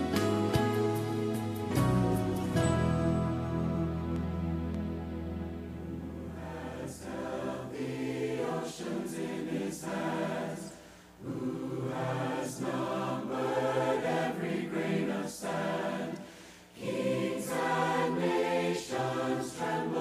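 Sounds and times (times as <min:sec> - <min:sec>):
choir singing: 0:06.1 - 0:20.0.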